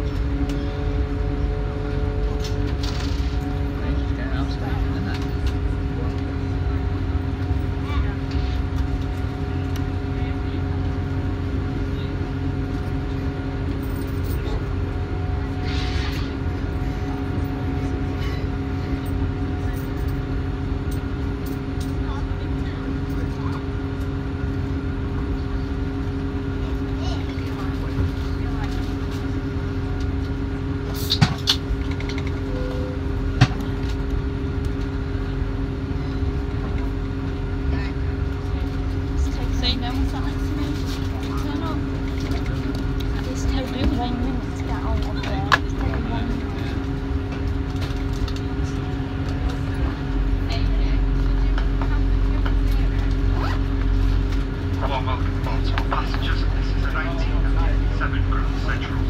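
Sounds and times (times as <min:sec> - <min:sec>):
diesel train engine hum: 0:00.0 - 0:59.0
low train rumble: 0:00.0 - 0:59.0.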